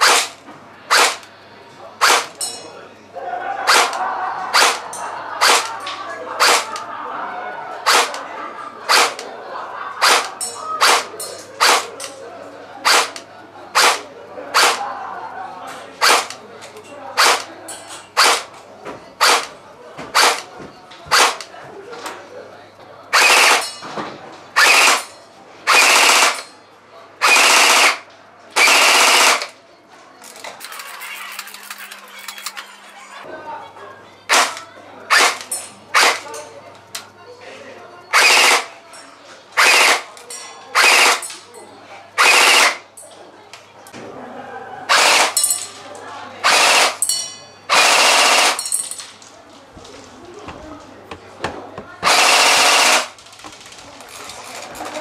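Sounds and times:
airsoft gun firing: 0:00.0 - 0:01.2, 0:02.0 - 0:02.3, 0:03.7 - 0:04.0, 0:04.6 - 0:04.8, 0:05.4 - 0:05.7, 0:06.4 - 0:06.8, 0:07.9 - 0:08.2, 0:08.9 - 0:09.2, 0:10.0 - 0:11.9, 0:12.8 - 0:13.2, 0:13.8 - 0:14.0, 0:14.6 - 0:14.8, 0:16.0 - 0:16.3, 0:17.2 - 0:17.5, 0:18.2 - 0:18.5, 0:19.2 - 0:19.5, 0:20.2 - 0:20.4, 0:21.1 - 0:21.4, 0:23.1 - 0:23.7, 0:24.6 - 0:25.1, 0:25.7 - 0:26.4, 0:27.2 - 0:28.0, 0:28.6 - 0:29.5, 0:34.3 - 0:34.5, 0:35.1 - 0:35.4, 0:36.0 - 0:36.2, 0:38.2 - 0:38.7, 0:39.6 - 0:40.1, 0:40.8 - 0:41.2, 0:42.2 - 0:42.8, 0:44.9 - 0:45.4, 0:46.4 - 0:47.0, 0:47.7 - 0:48.6, 0:52.0 - 0:53.1.

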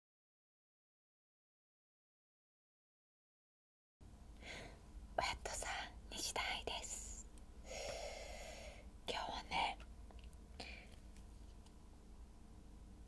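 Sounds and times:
woman whispering: 0:05.2 - 0:07.2, 0:09.1 - 0:09.8.

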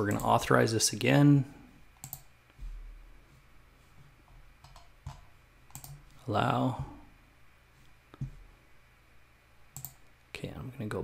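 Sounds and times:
faint computer mouse clicks: 0:04.6 - 0:06.0, 0:09.8 - 0:10.0.

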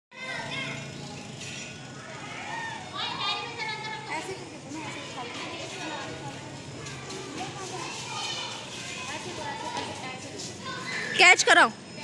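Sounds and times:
young children chattering: 0:00.1 - 0:12.0.

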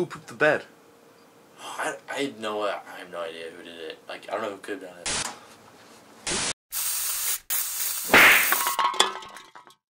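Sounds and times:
static-like hiss bursts: 0:06.3 - 0:08.7.

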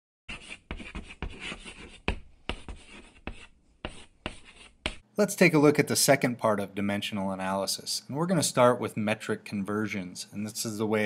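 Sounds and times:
chalk scratching on chalkboard: 0:00.3 - 0:05.1.

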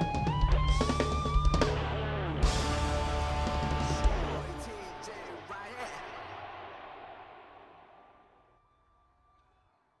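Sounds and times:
live band playing: 0:00.0 - 0:05.1.

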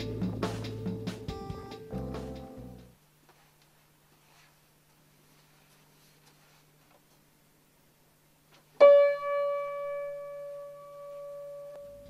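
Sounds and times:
high piano note ringing: 0:08.8 - 0:12.0.

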